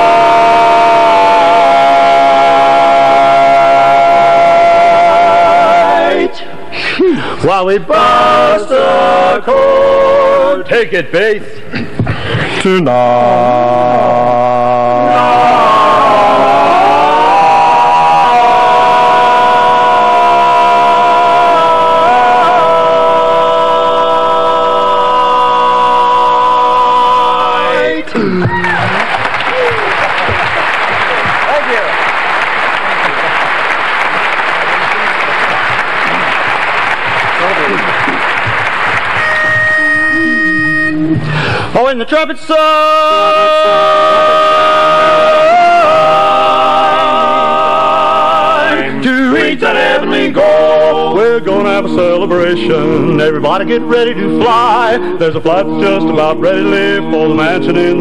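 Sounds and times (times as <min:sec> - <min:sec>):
quartet singing in harmony: 0:00.0 - 0:06.6, 0:07.4 - 0:10.8, 0:12.7 - 0:28.2, 0:42.6 - 0:58.0
audience applause: 0:28.4 - 0:39.9.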